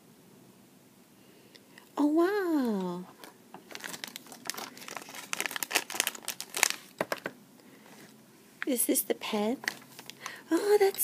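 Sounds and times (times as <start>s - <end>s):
plastic bag crinkling: 2.8s - 7.4s, 9.6s - 11.0s.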